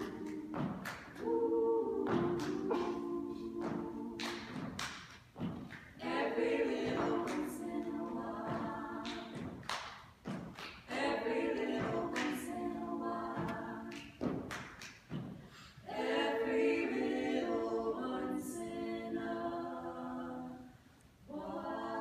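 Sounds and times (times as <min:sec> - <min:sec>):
hand claps: 0:00.0 - 0:01.4, 0:02.0 - 0:12.7, 0:13.3 - 0:15.5
women singing in harmony: 0:00.0 - 0:05.0, 0:06.0 - 0:09.6, 0:10.9 - 0:14.4, 0:15.8 - 0:22.0.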